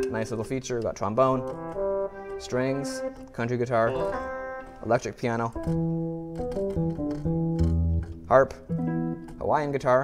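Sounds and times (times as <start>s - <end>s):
electric piano organ notes: 0.0s - 7.6s.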